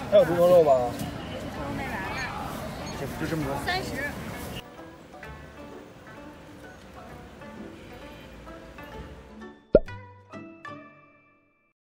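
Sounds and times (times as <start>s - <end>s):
background music: 4.6s - 11.7s
loud pop dropping in pitch: 9.8s - 10.0s.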